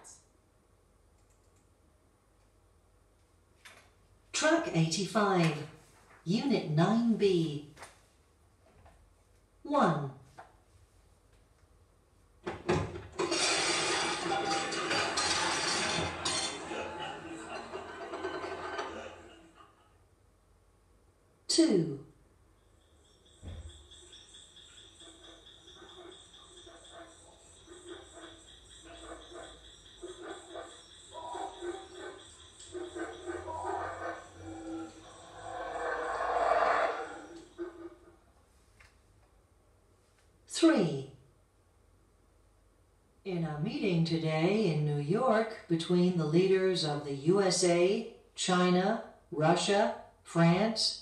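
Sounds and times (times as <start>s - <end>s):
music: 13.6s - 18.1s
voices: 15.9s - 19.6s, 24.7s - 37.9s
animal sounds: 22.6s - 38.2s
documentary music through speaker: 23.2s - 37.9s.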